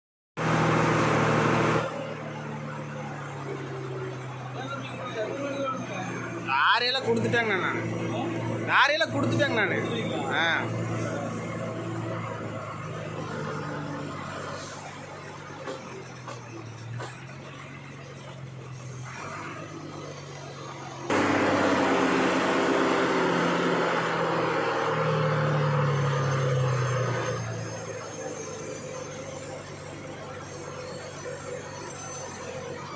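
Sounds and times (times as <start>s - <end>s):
low engine hum: 7.1s - 30.3s
loud rushing noise: 21.1s - 24.7s.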